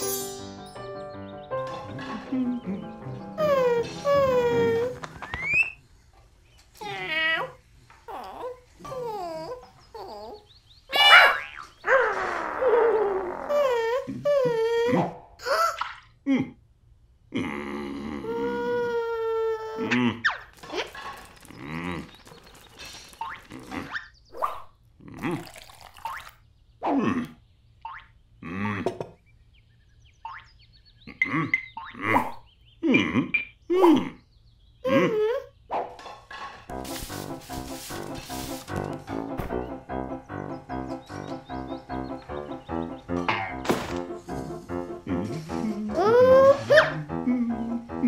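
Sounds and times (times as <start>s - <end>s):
cartoon animal calls: 6.8s - 16.0s
cartoon grunts and babbling: 17.3s - 20.4s, 34.8s - 35.6s, 45.1s - 48.0s.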